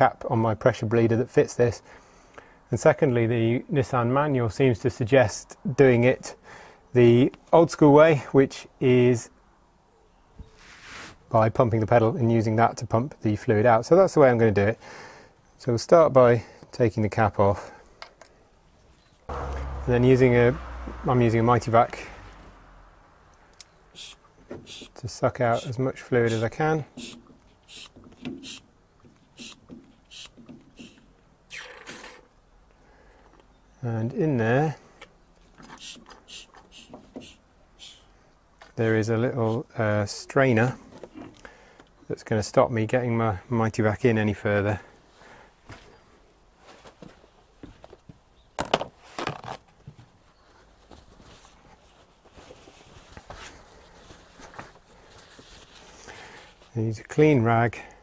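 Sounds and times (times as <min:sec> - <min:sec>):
hand vacuum pump hissing: 0:24.0 - 0:25.7, 0:26.3 - 0:28.6, 0:29.4 - 0:31.7, 0:35.8 - 0:38.1
man's voice: 0:25.4 - 0:26.8, 0:38.8 - 0:39.7.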